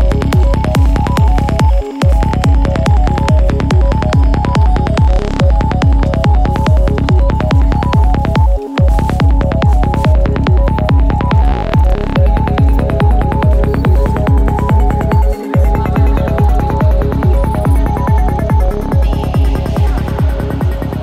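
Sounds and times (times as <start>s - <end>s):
kick drum: 0.0s - 21.0s
rolling bassline: 0.0s - 21.0s.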